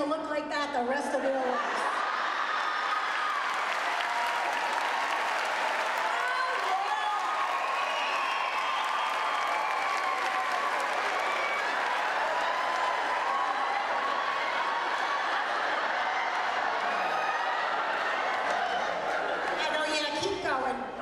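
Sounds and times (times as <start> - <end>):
audience laughing: 1.0 - 3.4, 13.7 - 19.9
audience applauding: 1.9 - 20.1.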